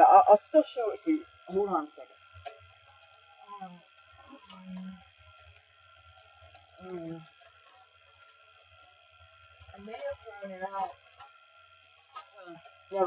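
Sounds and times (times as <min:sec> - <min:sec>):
low steady hum: 0:00.0 - 0:13.0
woman murmuring and humming: 0:03.5 - 0:05.0, 0:06.8 - 0:07.3.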